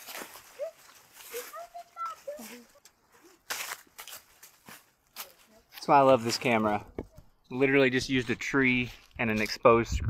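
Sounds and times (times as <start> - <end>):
footsteps crunching dry leaves: 0.0 - 6.9, 8.2 - 9.6.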